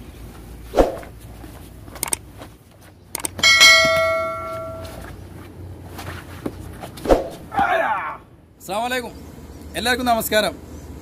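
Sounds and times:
sharp clicks: 2.0 - 2.2, 3.1 - 3.4
bell ding: 3.4 - 5.0.

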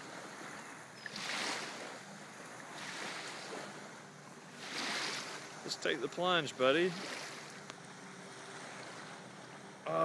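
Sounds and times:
shallow water sloshing and lapping: 0.0 - 9.9.

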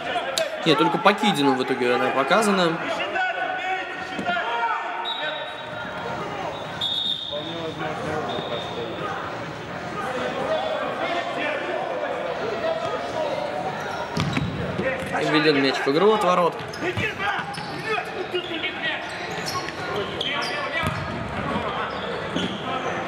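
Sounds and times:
players calling out in hall: 0.0 - 23.0.

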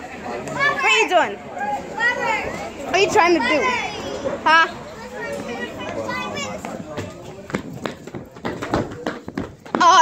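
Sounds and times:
children talking and calling out: 0.0 - 9.0.

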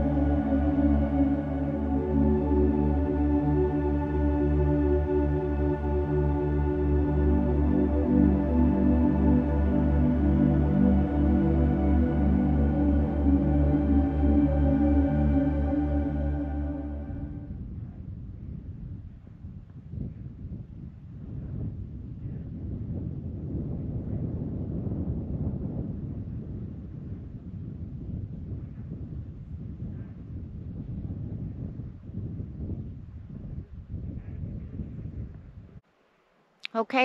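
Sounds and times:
wind blowing across microphone: 17.1 - 35.8.

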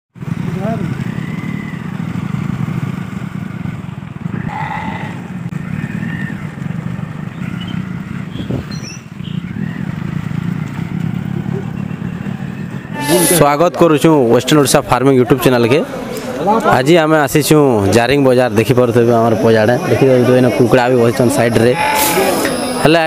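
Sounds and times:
motorcycle engine running: 0.2 - 23.0
indistinct voices: 12.8 - 23.0.

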